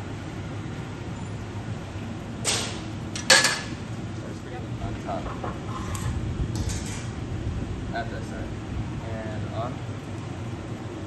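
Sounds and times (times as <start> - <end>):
sharp metal knocks: 2.4 - 3.8
steady low rumble: 6.1 - 11.0.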